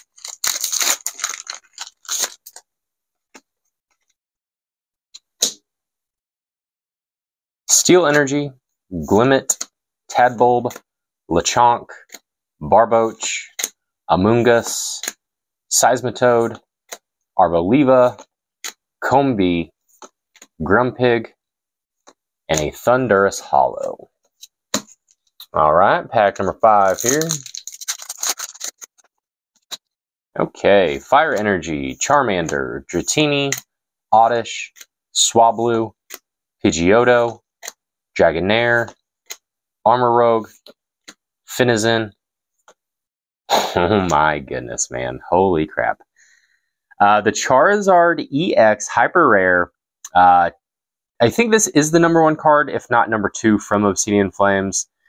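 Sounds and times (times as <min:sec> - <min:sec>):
foil wrapper crinkling and tearing: 0:00.0 - 0:02.6, 0:26.8 - 0:29.1.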